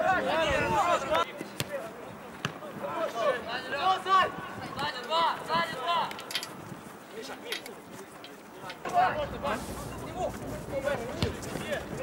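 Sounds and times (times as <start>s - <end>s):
football being kicked: 11.1s - 11.5s.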